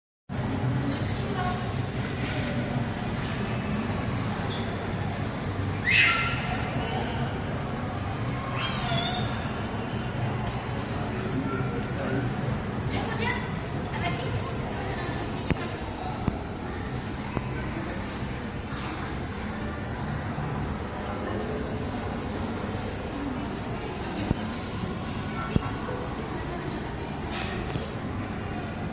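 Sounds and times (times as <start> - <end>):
indoor mall hubbub: 0.3 - 28.9.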